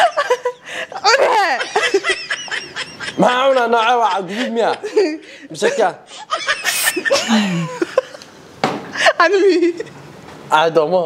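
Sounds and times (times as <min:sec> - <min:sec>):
people laughing: 0:00.0 - 0:08.3.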